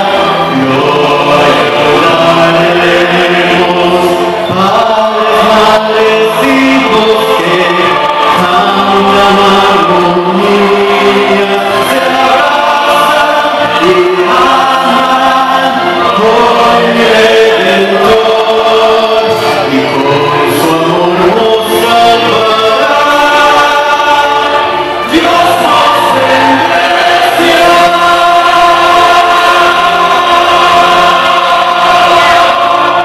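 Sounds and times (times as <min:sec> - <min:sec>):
man singing into microphone: 0:00.0 - 0:33.0
musical accompaniment: 0:00.0 - 0:33.0.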